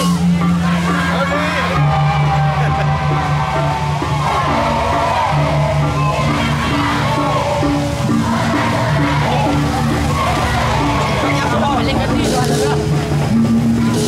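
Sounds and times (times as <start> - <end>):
crowd shouting: 0.0 - 14.0
gongs and gong-chimes beating: 0.0 - 14.0.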